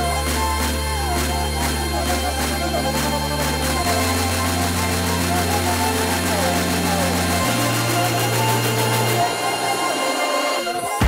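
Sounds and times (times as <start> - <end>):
held sub-bass notes: 0.0 - 9.3
voice in music track: 0.0 - 11.0.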